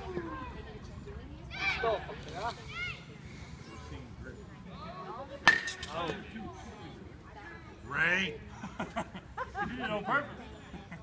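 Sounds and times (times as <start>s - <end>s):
bat cracking a ball: 5.4s - 6.2s.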